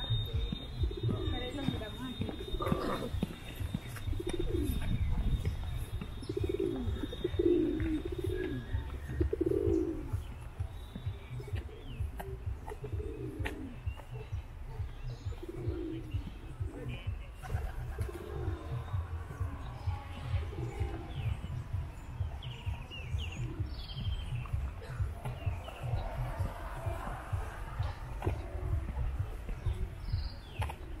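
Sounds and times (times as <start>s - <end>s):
birds calling low notes: 0.0s - 31.0s
steady low rumble: 0.0s - 31.0s.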